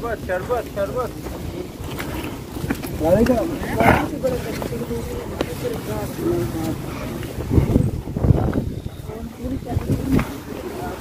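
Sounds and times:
footsteps crunching on gravel: 0.0 - 11.0
wind on microphone: 1.4 - 11.0.

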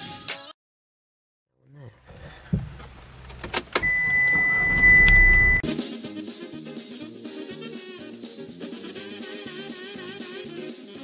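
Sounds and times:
car engine rumble: 2.0 - 5.6
steady high beep: 3.8 - 5.6.

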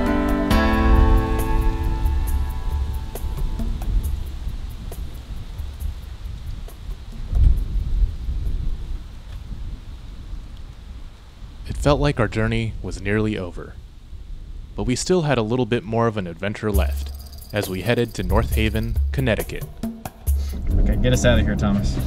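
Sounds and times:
guitar music: 0.0 - 4.4
wind buffeting microphone: 1.1 - 15.0, 20.6 - 22.0.

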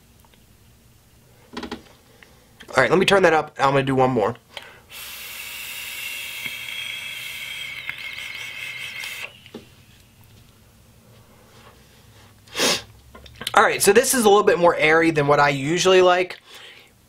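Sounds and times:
air hissing: 4.6 - 10.3
coil sizzling: 4.9 - 11.6.

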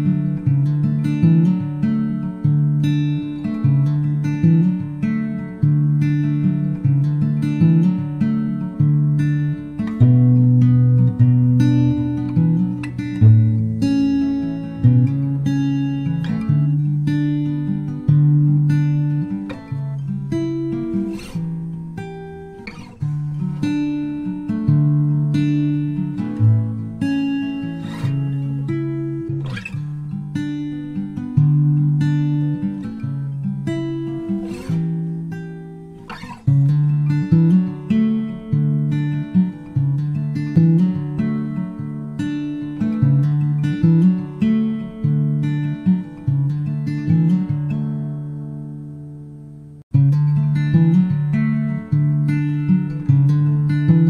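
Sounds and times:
acoustic guitar folk instrumental: 0.0 - 54.0.

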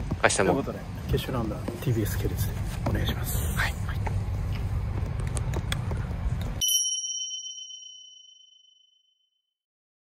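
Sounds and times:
bright bell-like ding: 6.6 - 9.0.

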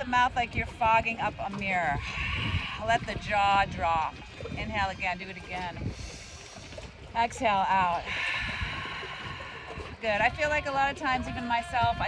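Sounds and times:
breathy exhale through mouth: 2.0 - 3.1, 8.0 - 10.0.

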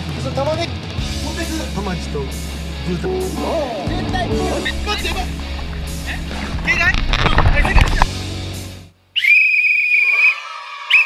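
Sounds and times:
lower steady tones: 2.9 - 8.9
short whistle chirp: 9.2 - 11.0.

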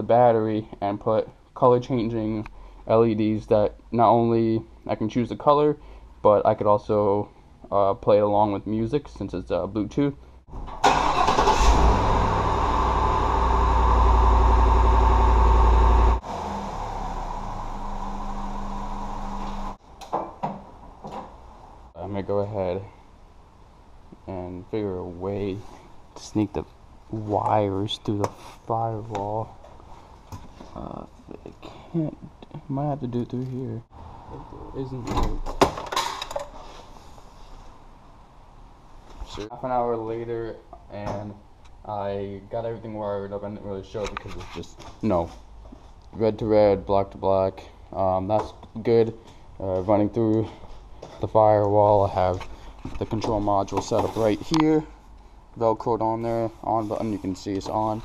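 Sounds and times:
car engine starting and idling: 10.7 - 19.8.

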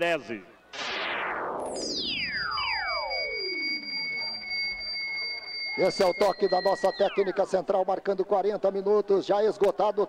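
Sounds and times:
synthesized tones gliding down: 0.8 - 7.8
steady high beeping tones: 0.8 - 8.3.

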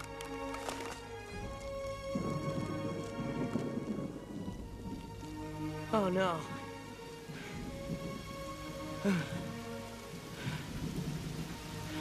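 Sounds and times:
film score music: 0.0 - 12.0
rain falling: 0.0 - 12.0
thunder rumbling: 0.0 - 12.0.

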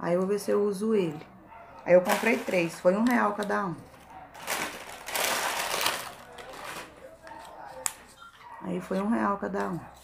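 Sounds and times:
packaging crinkling: 2.0 - 8.0.

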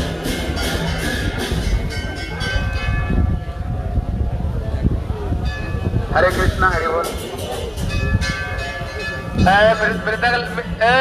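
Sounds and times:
metal bell struck and ringing: 0.2 - 3.6, 7.0 - 10.8.

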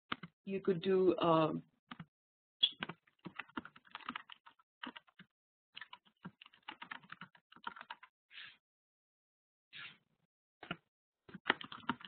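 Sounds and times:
typing on computer keyboard: 0.1 - 0.3, 1.9 - 8.1, 10.6 - 12.0.

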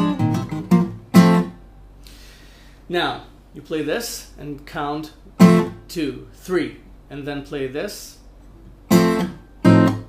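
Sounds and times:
acoustic guitar chords plucked: 0.0 - 2.0, 5.3 - 5.9, 8.6 - 10.0.

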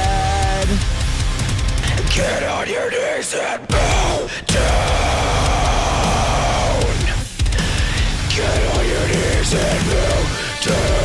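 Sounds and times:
heavy metal backing track: 0.0 - 11.0.

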